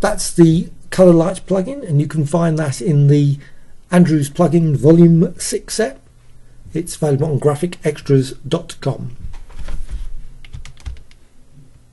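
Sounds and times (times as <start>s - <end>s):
computer keyboard keys clicking: 10.4s - 11.2s.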